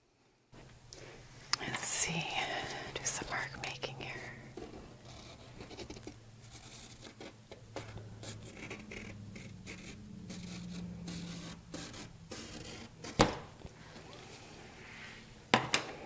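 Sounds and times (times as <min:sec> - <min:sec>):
pencil scratching on painted panel: 0:04.6 - 0:13.3.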